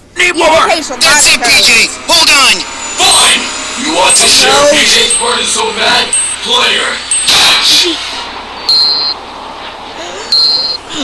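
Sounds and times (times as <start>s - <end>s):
steady background noise: 0.0s - 11.0s
high electronic beep: 2.2s - 7.6s, 8.6s - 9.2s, 10.3s - 10.8s.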